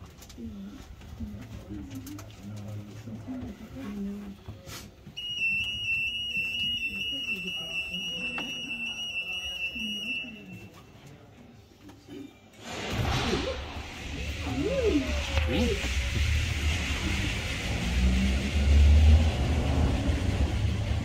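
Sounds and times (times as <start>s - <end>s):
high-pitched electronic alarm tone: 5.2s - 10.6s.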